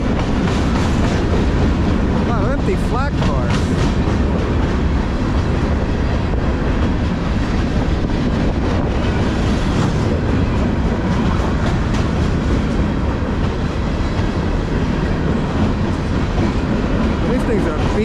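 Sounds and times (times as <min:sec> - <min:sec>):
train clacks: 0:00.0 - 0:18.0
train wheels rumbling on rail: 0:00.0 - 0:18.0.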